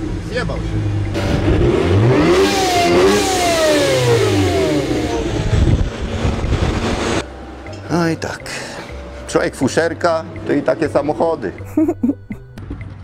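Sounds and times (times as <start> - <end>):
car engine revving: 0.0 - 7.6.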